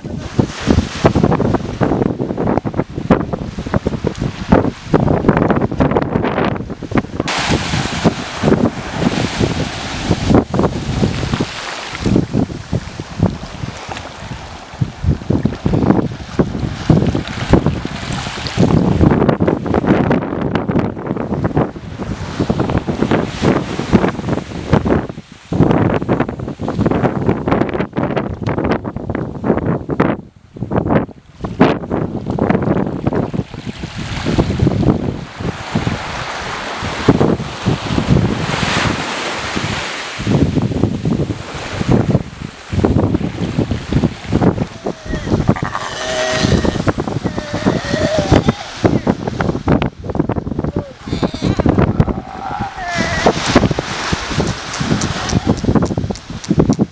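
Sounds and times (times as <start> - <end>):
small waves washing onto sand: 0.0 - 27.6, 31.2 - 56.9
wind buffeting microphone: 0.0 - 56.9.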